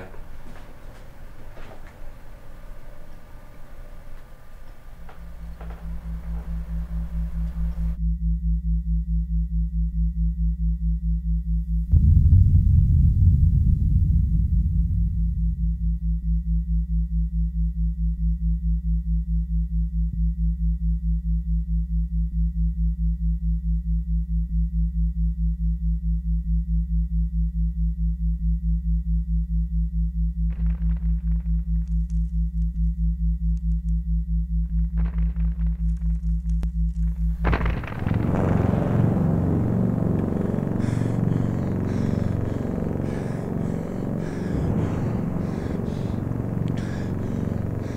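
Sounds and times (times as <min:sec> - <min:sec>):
low pulsing hum: 0:00.0 - 0:47.9.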